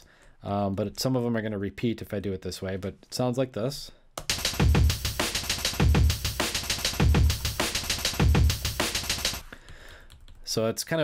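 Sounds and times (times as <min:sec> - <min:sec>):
fast breakbeat: 0:04.3 - 0:09.5
deep kick drum: 0:05.8 - 0:06.4, 0:07.0 - 0:08.8.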